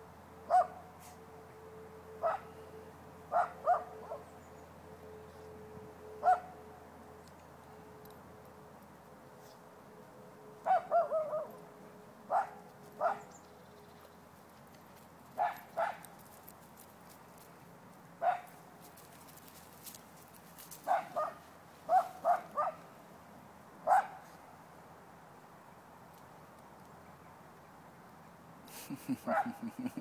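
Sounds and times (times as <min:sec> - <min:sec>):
dog barking: 0:00.5 - 0:00.8, 0:02.2 - 0:02.5, 0:03.3 - 0:04.3, 0:06.2 - 0:06.5, 0:10.7 - 0:11.6, 0:12.3 - 0:13.3, 0:15.4 - 0:16.0, 0:18.2 - 0:18.5, 0:20.9 - 0:22.8, 0:23.9 - 0:24.2, 0:29.2 - 0:29.9.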